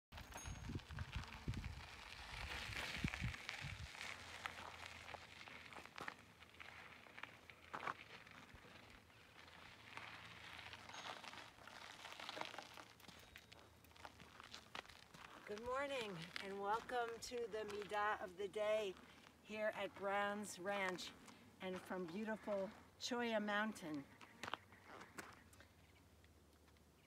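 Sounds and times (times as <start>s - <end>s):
wind buffeting microphone: 0.6s - 4.0s.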